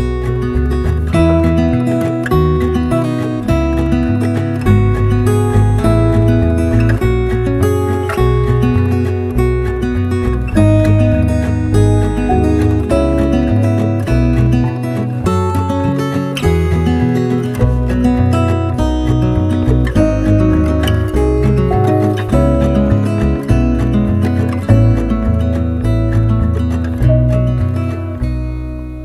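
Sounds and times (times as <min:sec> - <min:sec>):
bass line: 0:00.0 - 0:29.0
strummed acoustic guitar music: 0:00.0 - 0:29.0.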